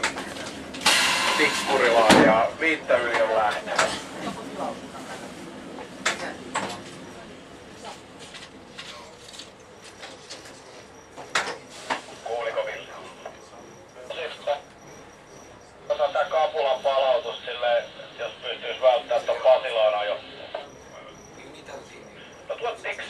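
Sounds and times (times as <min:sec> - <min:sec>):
speech over two-way radio: 0:12.2 - 0:14.8, 0:15.8 - 0:23.0.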